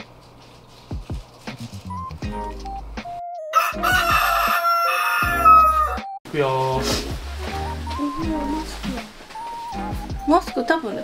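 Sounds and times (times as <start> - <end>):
light background music: 0.0 - 11.0
rooster crowing: 3.5 - 6.1.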